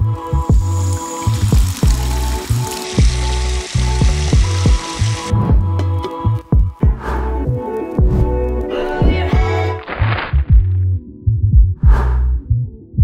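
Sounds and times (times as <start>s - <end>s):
water pouring: 0.0s - 7.4s
electronic music with bass beat: 0.0s - 13.0s.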